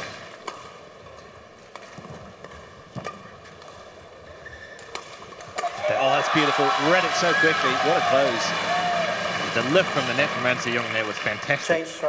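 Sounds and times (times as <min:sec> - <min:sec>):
rackets hitting shuttlecock: 0:04.8 - 0:09.6.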